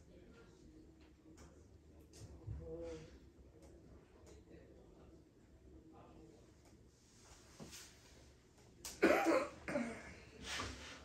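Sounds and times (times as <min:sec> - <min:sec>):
person coughing: 0:09.0 - 0:10.2.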